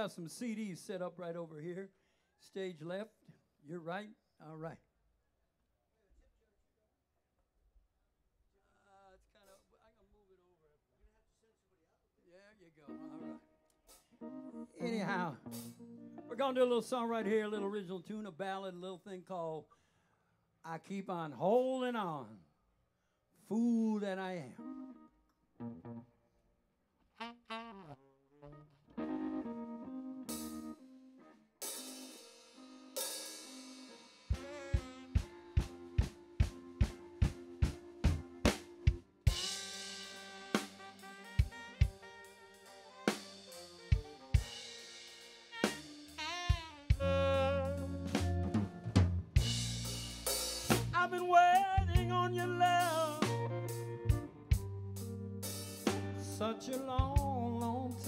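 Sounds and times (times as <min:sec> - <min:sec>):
blues band playing slow ballad: 0:12.9 - 0:16.5, 0:28.9 - 0:58.0
bass: 0:14.7 - 0:17.9, 0:29.0 - 0:30.8, 0:32.9 - 0:41.9, 0:45.6 - 0:58.0
wavering lead melody: 0:24.6 - 0:26.0, 0:28.4 - 0:31.3, 0:32.0 - 0:50.7
slow steady drum beat: 0:30.3 - 0:30.7, 0:31.6 - 0:58.0.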